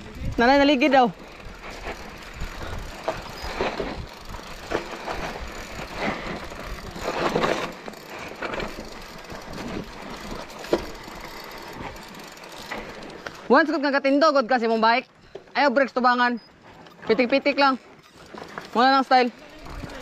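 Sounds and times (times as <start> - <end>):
bike tyres crunching on gravel: 0.0 - 13.4
bike rattling over bumps: 0.0 - 14.7, 17.1 - 20.0.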